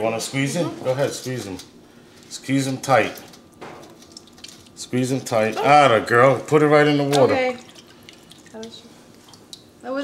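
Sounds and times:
water dripping and squishing: 2.9 - 5.6, 7.0 - 9.8.

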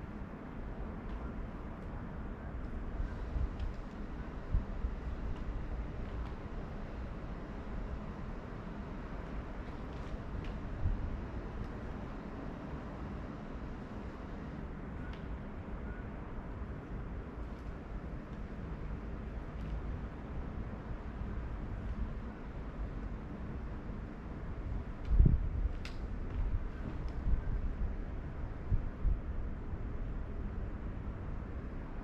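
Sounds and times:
low rumbling background noise: 0.0 - 32.0.

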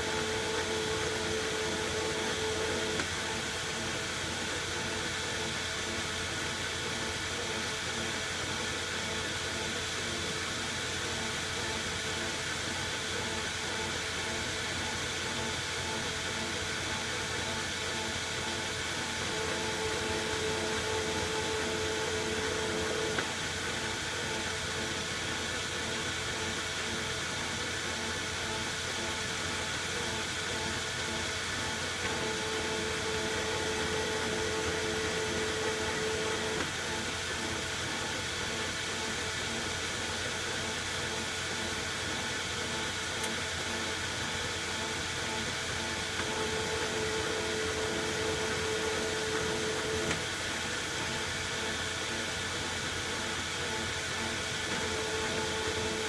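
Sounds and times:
cutting tool whine: 0.0 - 6.1, 16.2 - 25.1, 30.2 - 40.2, 41.8 - 56.0
metal lathe running: 0.0 - 56.0.

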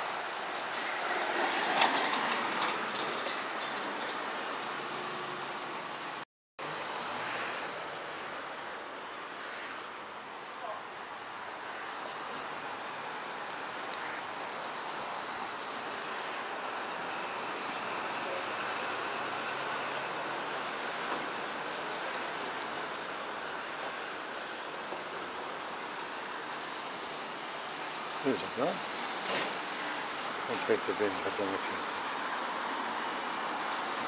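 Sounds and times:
traffic rushing noise: 0.0 - 34.0.

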